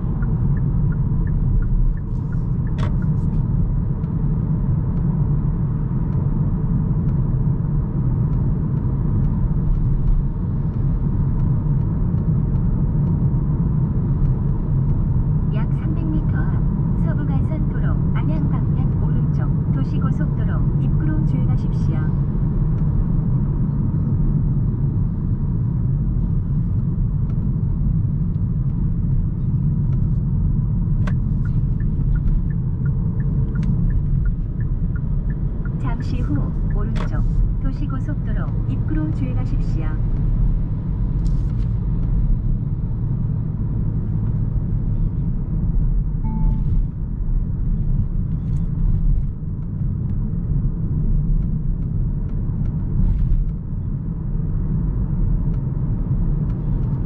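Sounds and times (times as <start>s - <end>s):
road and tyre noise in car cabin: 0.0s - 57.0s.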